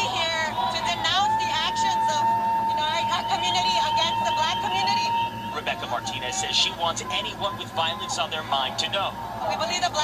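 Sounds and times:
high-pitched hum: 0.0s - 10.0s.

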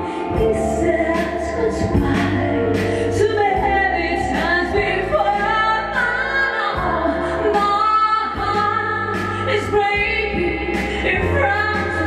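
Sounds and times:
backing music with beat: 0.0s - 12.0s
woman singing pop song: 0.0s - 12.0s.

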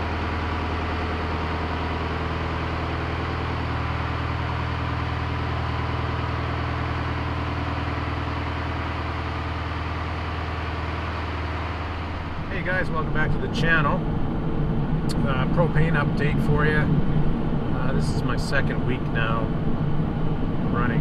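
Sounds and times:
diesel engine idling: 0.0s - 21.0s.

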